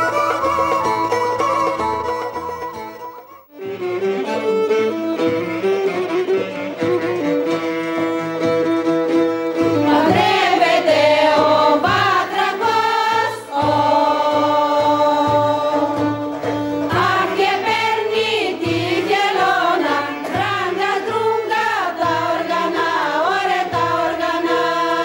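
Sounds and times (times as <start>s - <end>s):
clarinet melody: 0.0s - 9.3s
violin melody: 0.0s - 25.0s
women's choir singing: 9.8s - 25.0s.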